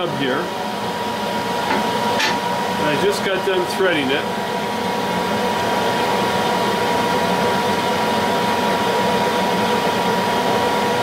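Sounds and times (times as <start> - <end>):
machine whirring with high whine: 0.0 - 11.0.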